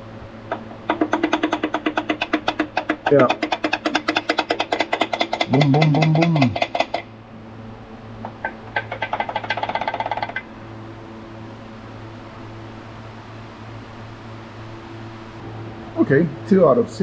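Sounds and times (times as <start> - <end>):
steady low hum: 0.0 - 17.0
metallic knocking of rod bearing: 0.5 - 7.1, 8.2 - 10.5.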